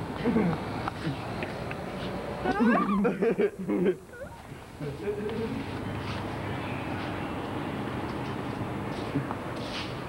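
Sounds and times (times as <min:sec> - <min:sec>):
person's squeaky vocal glide: 0:04.1 - 0:04.5.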